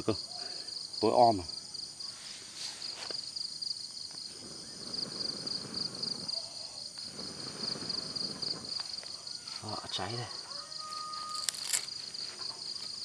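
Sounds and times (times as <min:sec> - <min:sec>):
crickets chirping: 0:00.0 - 0:13.0
man blowing on embers: 0:04.1 - 0:09.2.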